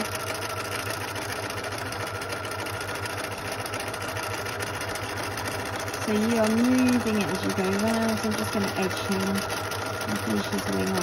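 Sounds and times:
sewing machine stitching: 0.0s - 11.0s.

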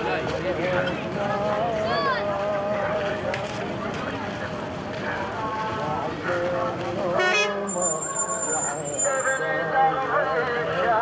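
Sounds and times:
crowd talking: 0.0s - 11.0s.

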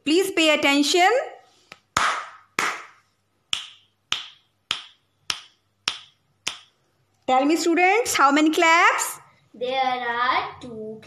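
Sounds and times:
hand claps: 1.7s - 6.7s.

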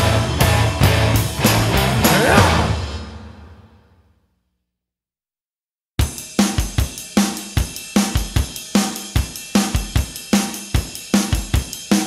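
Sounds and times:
hi-hat and cymbals: 6.0s - 12.0s.

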